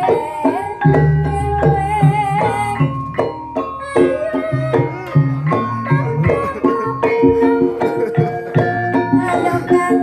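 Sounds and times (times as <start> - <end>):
drum strokes: 0.0 - 10.0
wavering melody line: 0.0 - 10.0.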